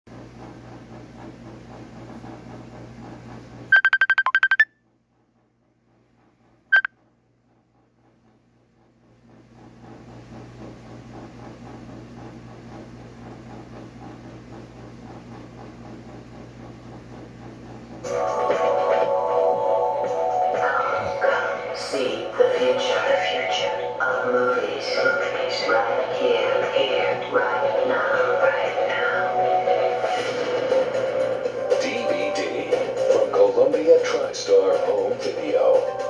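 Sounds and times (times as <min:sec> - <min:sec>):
loud high electronic beeps: 0:03.7 - 0:04.6.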